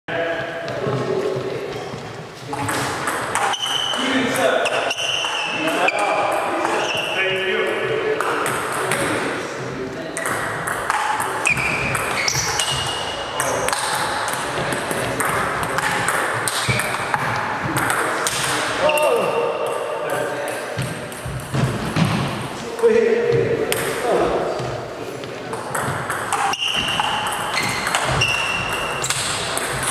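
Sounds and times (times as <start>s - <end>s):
voices talking: 0.1s - 29.9s.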